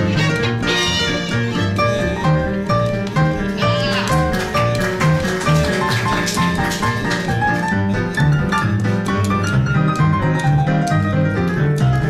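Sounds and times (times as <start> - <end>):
double bass notes: 0.0 - 5.2
jazz band playing swing: 0.0 - 12.0.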